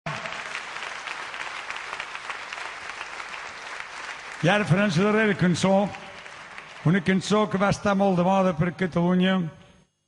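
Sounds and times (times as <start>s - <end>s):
audience applauding: 0.1s - 8.0s.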